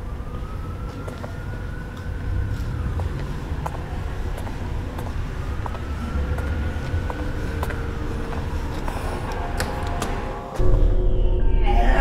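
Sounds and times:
city traffic rumble: 0:00.0 - 0:12.0
distant siren wailing: 0:00.0 - 0:12.0.

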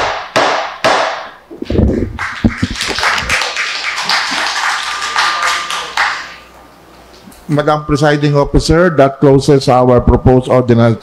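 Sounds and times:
people applauding: 0:01.8 - 0:06.5.

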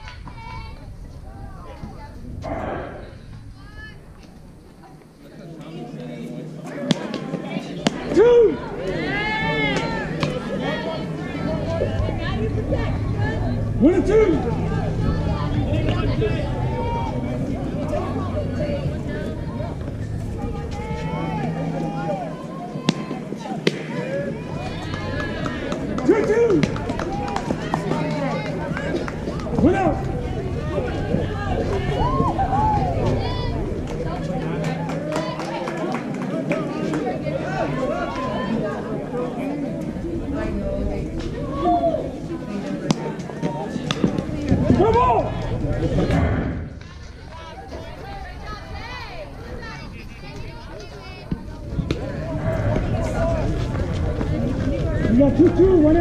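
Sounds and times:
voices shouting and cheering: 0:00.0 - 0:56.0
loud drawn-out yell: 0:29.6 - 0:33.8.

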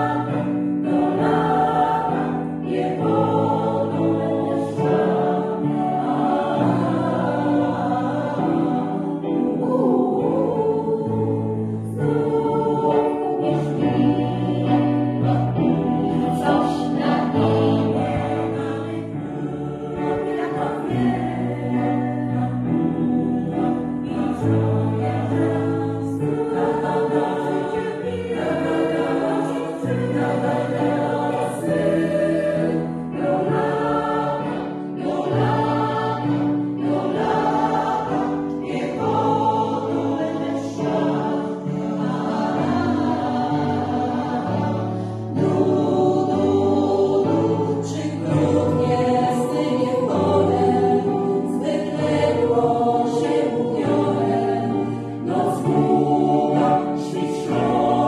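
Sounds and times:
mixed choir singing: 0:00.0 - 0:58.0.

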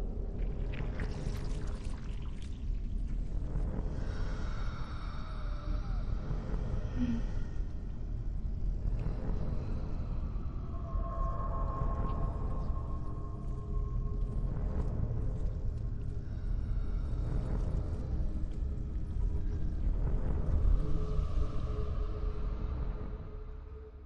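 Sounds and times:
deep rumbling drone: 0:00.0 - 0:24.0.

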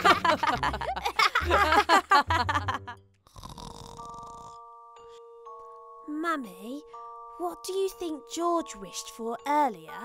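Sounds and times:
cartoon pig snore: 0:03.3 - 0:04.6.

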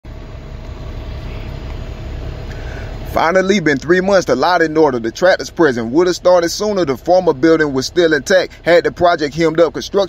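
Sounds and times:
faint hum: 0:00.1 - 0:10.0.

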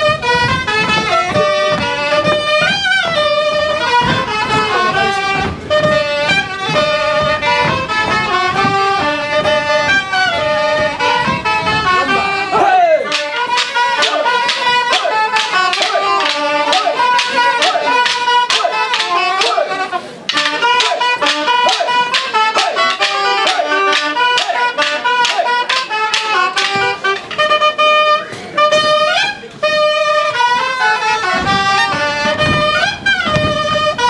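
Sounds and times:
shrill pipe melody: 0:00.0 - 0:34.0
sharp drum strikes: 0:13.1 - 0:27.3.

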